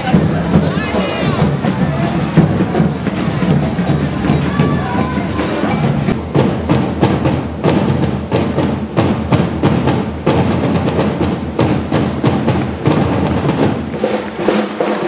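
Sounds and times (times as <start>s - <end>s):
fast drum strokes: 0.0s - 15.0s
heavy drum thuds: 0.0s - 15.0s.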